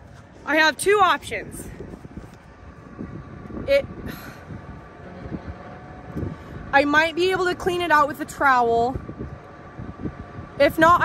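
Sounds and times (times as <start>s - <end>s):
low background rumble: 0.0s - 11.0s
woman speaking: 0.4s - 1.7s, 3.7s - 3.9s, 6.7s - 9.0s, 10.6s - 11.0s.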